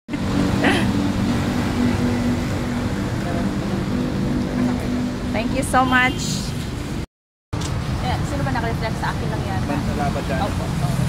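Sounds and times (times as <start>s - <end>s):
vehicle engine running: 0.1s - 5.7s.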